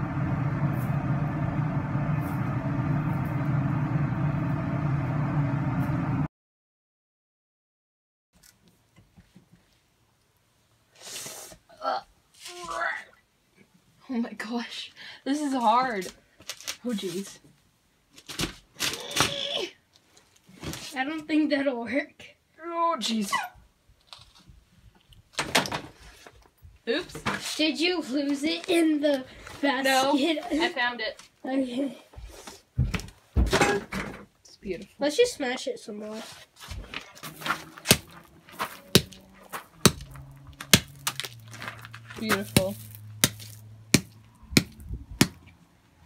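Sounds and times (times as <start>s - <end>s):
hammer blows on gravel: 37.2s - 41.4s, 42.2s - 45.4s.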